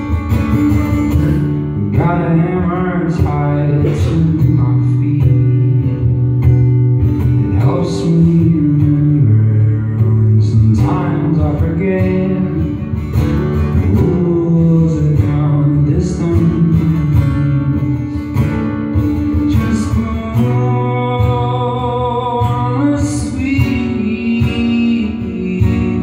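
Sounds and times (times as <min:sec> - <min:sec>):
man singing: 0:00.0 - 0:06.1, 0:07.2 - 0:26.0
acoustic guitar strumming: 0:00.0 - 0:26.0.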